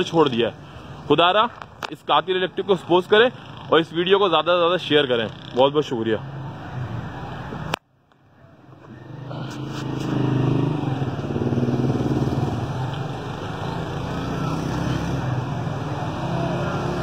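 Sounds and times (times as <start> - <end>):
traffic noise: 0.0 - 17.0.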